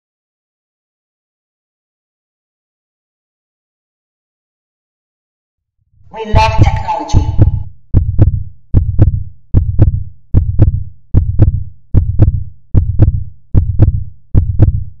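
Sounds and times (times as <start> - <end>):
synthetic heartbeat thumps: 6.3 - 15.0.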